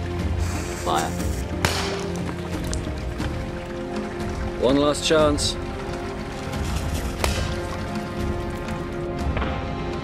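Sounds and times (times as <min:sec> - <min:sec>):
background music with sustained tones: 0:00.0 - 0:10.0
small cannon firing crack: 0:01.6 - 0:02.2.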